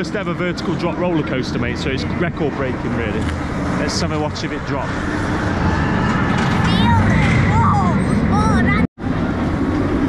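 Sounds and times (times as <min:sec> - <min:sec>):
low rumble of ride: 0:00.0 - 0:10.0
roller coaster riders screaming: 0:04.9 - 0:10.0.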